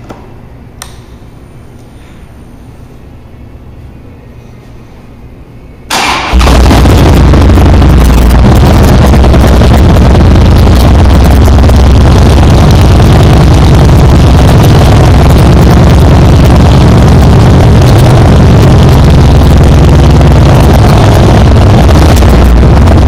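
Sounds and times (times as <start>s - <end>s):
loud motorcycle engine idling: 6.3s - 23.0s.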